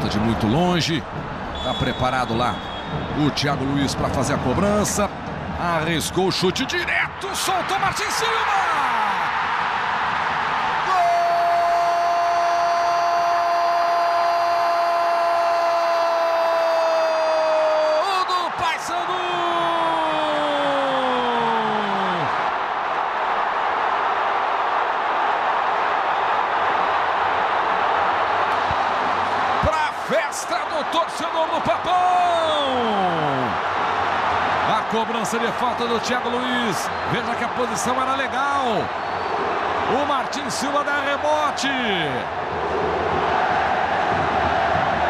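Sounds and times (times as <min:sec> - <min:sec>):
stadium crowd cheering: 0:00.0 - 0:45.0.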